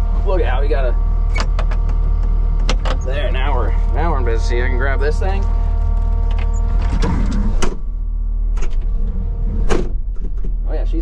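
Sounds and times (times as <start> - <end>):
diesel engine idling: 0.0 - 6.8.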